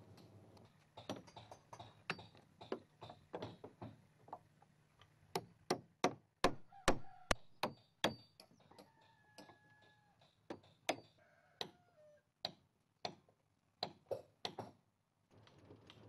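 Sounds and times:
hammer striking chisel on wood: 5.3s - 8.3s.

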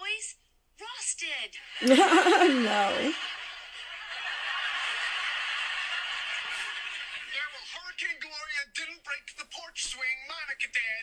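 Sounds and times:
studio audience laughing: 1.8s - 7.7s.

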